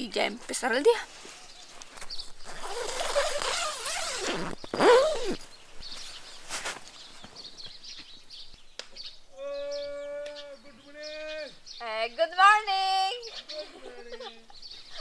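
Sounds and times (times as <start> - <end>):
tent fabric rustling: 0.4 - 7.6.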